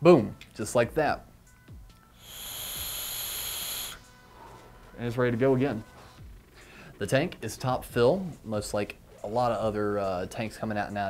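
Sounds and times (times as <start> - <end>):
hiss of air with thin whistle: 2.1 - 4.4.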